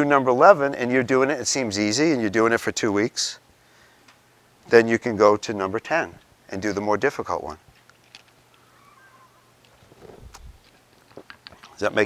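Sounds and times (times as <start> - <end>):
faint wavering squeak: 8.6 - 10.2.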